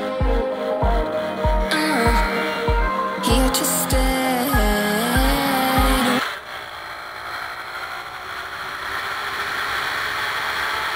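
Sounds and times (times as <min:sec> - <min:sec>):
music with steady beat: 0:00.0 - 0:06.2
two-stroke moped engine running: 0:00.0 - 0:10.9.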